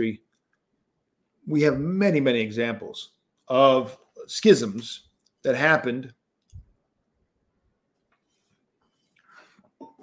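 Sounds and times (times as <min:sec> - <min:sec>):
man speaking: 0:00.0 - 0:00.3, 0:01.4 - 0:06.2.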